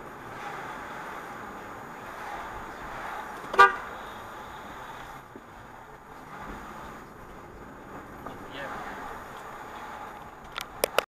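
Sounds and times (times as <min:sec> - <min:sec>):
road noise of car driving: 0:00.0 - 0:11.0
short car horn beep: 0:03.5 - 0:03.9.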